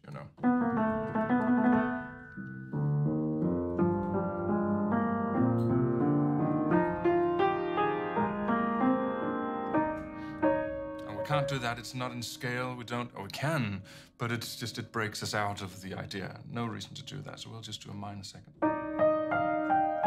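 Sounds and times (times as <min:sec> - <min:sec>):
upright piano chords: 0:00.3 - 0:13.1, 0:18.5 - 0:20.0.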